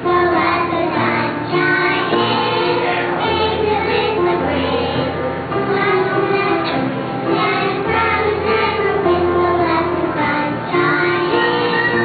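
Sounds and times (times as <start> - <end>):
children singing together: 0.0 - 12.0.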